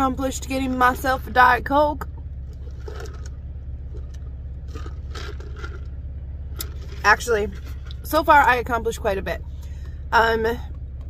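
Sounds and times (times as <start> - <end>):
idling car hum: 0.0 - 11.0
cup and ice rustles: 2.6 - 3.3, 3.9 - 5.9, 6.6 - 8.1
slurping through a straw: 2.6 - 3.3, 4.7 - 5.9.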